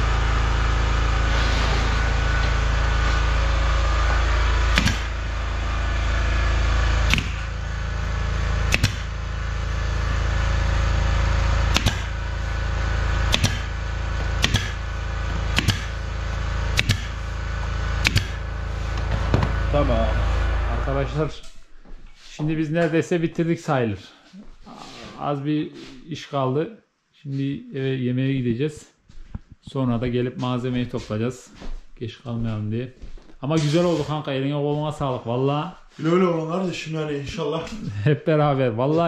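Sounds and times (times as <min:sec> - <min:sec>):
air compressor humming: 0:00.0 - 0:22.2
nail gun firing into wood: 0:04.7 - 0:05.2, 0:07.1 - 0:07.5, 0:08.7 - 0:09.1, 0:11.7 - 0:12.2, 0:13.3 - 0:13.8, 0:14.4 - 0:14.8, 0:15.5 - 0:16.0, 0:16.7 - 0:17.2, 0:18.0 - 0:18.4.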